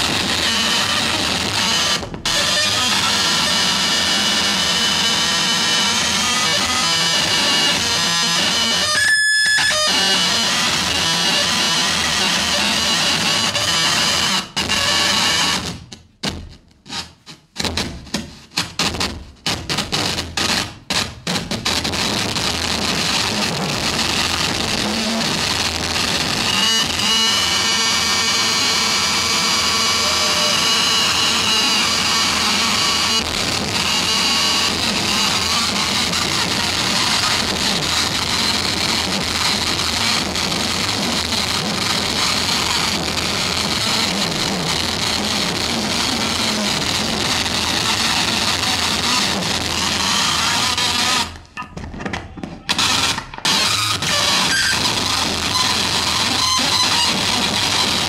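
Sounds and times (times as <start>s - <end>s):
high whining tones: 0.0s - 15.6s, 24.3s - 44.8s
harsh noise music through pa: 0.0s - 58.0s.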